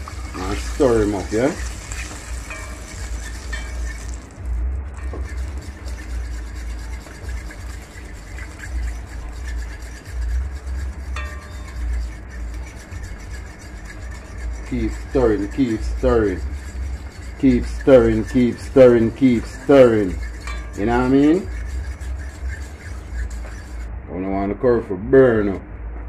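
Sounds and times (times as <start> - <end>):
fork scraping in frying pot: 0.0 - 4.4, 5.0 - 23.9
steady low rumble: 0.0 - 26.0.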